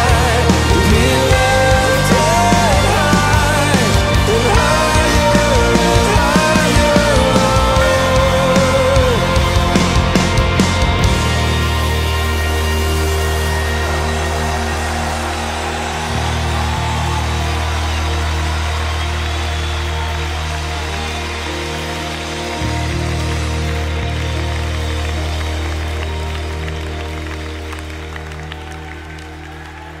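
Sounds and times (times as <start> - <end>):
band playing worship song: 0.0 - 30.0.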